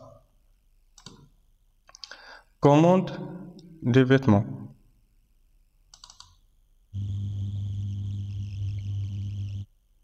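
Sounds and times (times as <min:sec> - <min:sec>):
low electrical buzz: 0:04.4 - 0:10.0
thin high whine: 0:07.0 - 0:09.7.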